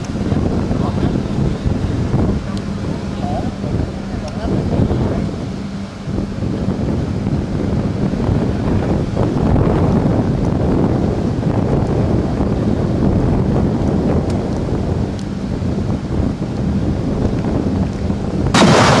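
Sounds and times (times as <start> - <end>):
wind on microphone: 0.0 - 19.0
anti-aircraft gun firing: 18.5 - 19.0.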